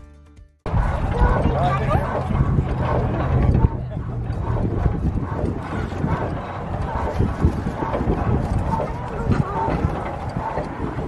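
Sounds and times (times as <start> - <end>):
stationary engine knocking chug: 0.7 - 11.0.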